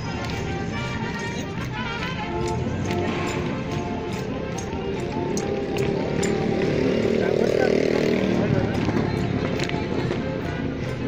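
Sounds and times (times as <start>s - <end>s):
crowd voices: 0.0s - 11.0s
folk dance orchestra playing: 0.0s - 11.0s.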